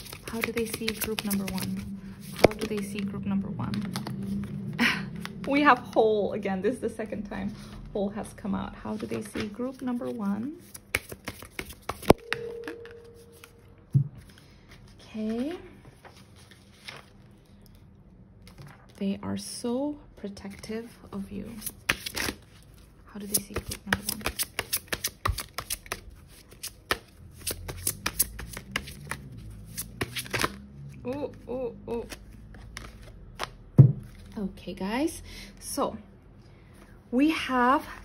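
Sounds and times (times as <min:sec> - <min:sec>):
cards being shuffled: 0:00.0 - 0:03.1, 0:03.7 - 0:05.7, 0:08.9 - 0:13.6, 0:21.4 - 0:30.7, 0:31.3 - 0:34.4.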